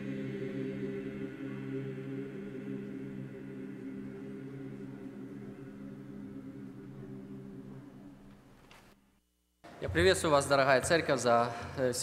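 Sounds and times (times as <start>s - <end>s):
church choir holding a chord: 0.0s - 8.6s.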